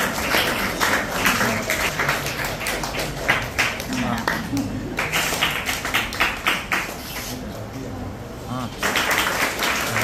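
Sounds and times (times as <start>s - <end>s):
hand clapping: 0.0s - 7.3s, 8.8s - 10.0s.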